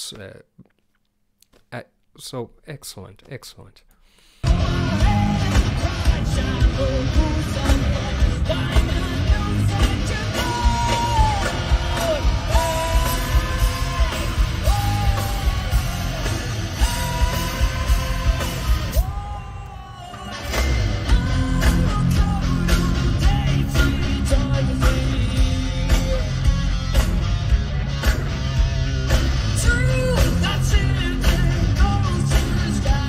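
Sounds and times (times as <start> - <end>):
person singing lead vocal: 4.4 - 26.6, 29.5 - 33.0
live rock band: 4.4 - 33.0.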